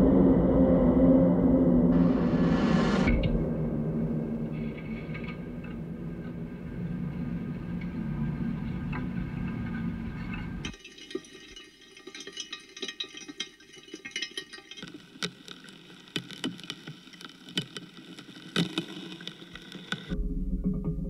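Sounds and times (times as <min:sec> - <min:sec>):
low drone: 0:00.0 - 0:10.7
clicks and crackles: 0:07.1 - 0:20.2.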